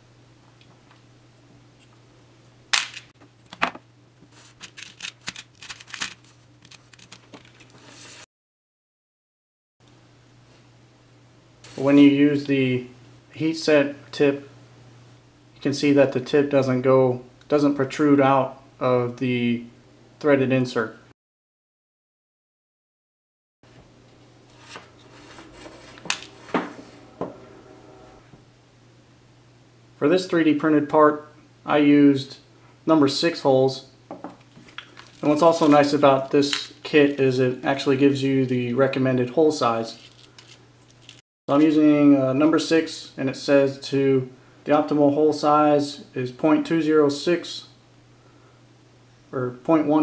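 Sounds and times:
faint steady hum: 0:09.8 - 0:21.1, 0:23.7 - 0:50.0.

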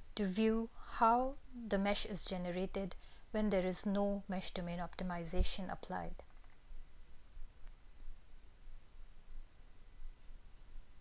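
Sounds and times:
faint steady high tone: 0:00.0 - 0:11.0.

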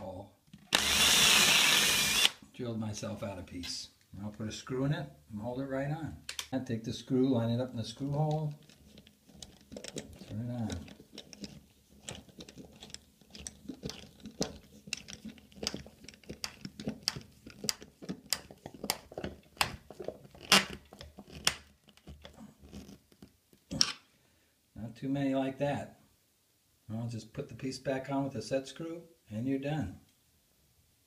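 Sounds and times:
screwdriver clicks and creaks: 0:00.5 - 0:02.4, 0:06.3 - 0:06.5, 0:08.0 - 0:24.0.

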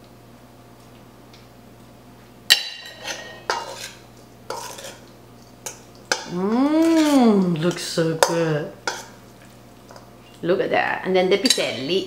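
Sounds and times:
spoon scraping metal bowl: 0:02.8 - 0:05.0, 0:06.8 - 0:07.2.

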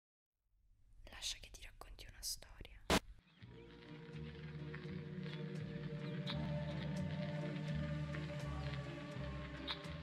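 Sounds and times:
faint whispered voice: 0:01.0 - 0:03.0.

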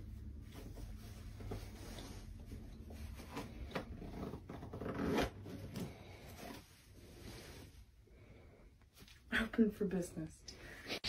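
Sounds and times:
zipper rasp: 0:03.2 - 0:06.6.

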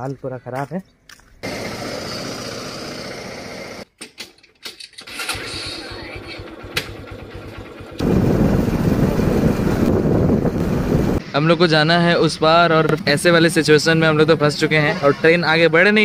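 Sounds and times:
motorcycle engine idling: 0:06.0 - 0:09.8
wind rushing on microphone: 0:08.0 - 0:11.2.

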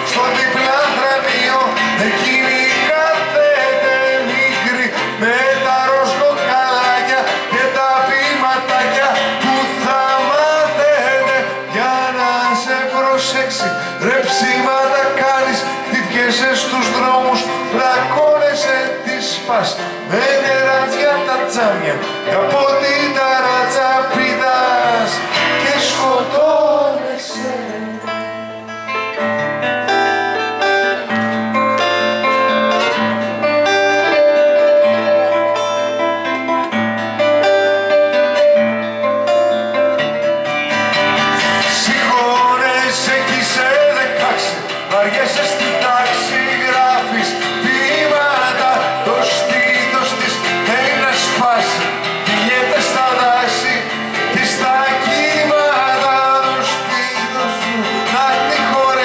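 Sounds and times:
man singing: 0:00.0 - 0:29.0, 0:40.9 - 0:59.0
acoustic guitar: 0:00.0 - 0:59.0
stage keyboard playing: 0:00.0 - 0:59.0.

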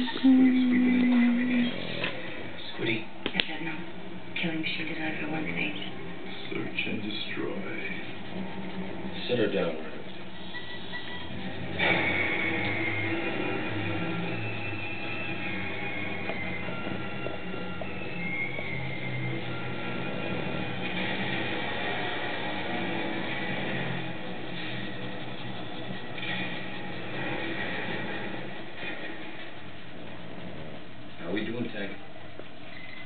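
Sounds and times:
music from a television: 0:06.6 - 0:31.6.

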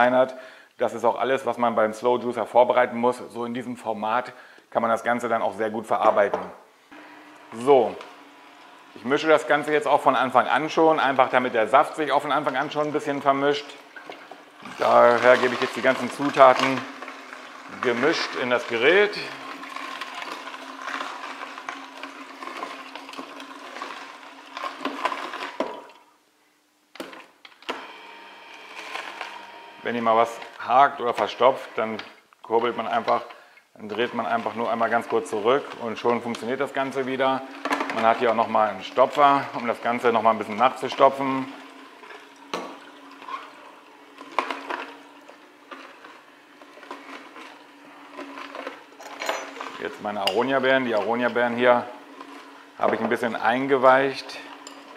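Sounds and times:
juicer motor humming: 0:05.9 - 0:26.0, 0:27.0 - 0:54.9
juicer click: 0:06.0 - 0:11.6, 0:12.2 - 0:26.0, 0:27.0 - 0:54.9
produce crackling: 0:07.4 - 0:25.7, 0:28.6 - 0:54.9.

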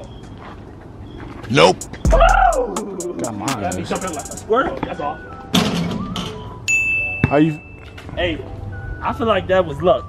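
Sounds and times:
background music: 0:01.6 - 0:10.0
bright ding: 0:06.7 - 0:07.9.

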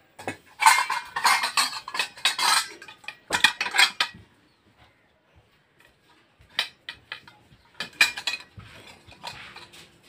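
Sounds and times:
metal dishes and utensils clattering: 0:00.1 - 0:04.3, 0:06.1 - 0:10.0.

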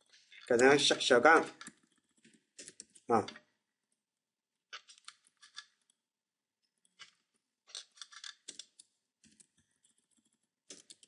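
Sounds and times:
faint keyboard and mouse clicks: 0:01.3 - 0:03.5, 0:04.7 - 0:06.0, 0:06.8 - 0:11.0.

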